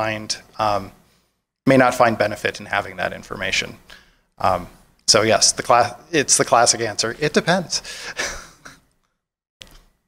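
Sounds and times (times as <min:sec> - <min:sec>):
man laughing breathily: 0:07.8 - 0:08.9.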